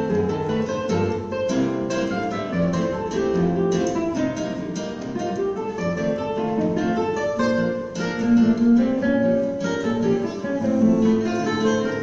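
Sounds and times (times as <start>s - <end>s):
classical guitar duet: 0.0s - 12.0s.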